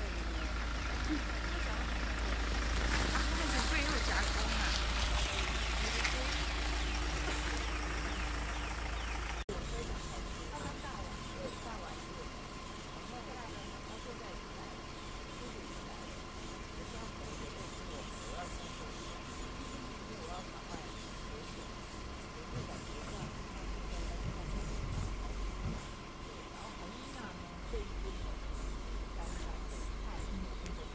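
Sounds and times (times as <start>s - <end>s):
low indistinct voices: 0.0s - 30.9s
vehicle engine idling: 0.0s - 30.9s.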